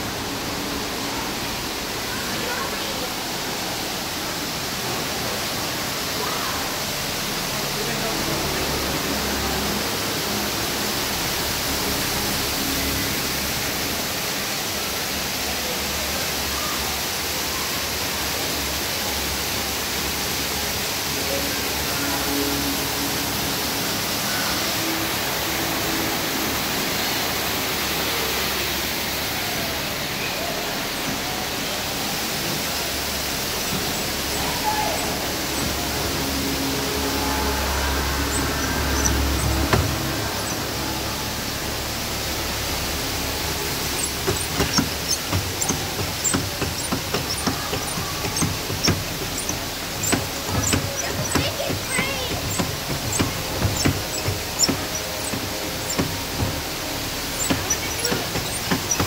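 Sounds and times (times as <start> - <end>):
faint music: 0.0 - 59.0
water rushing: 0.0 - 59.0
crowd voices: 27.6 - 59.0.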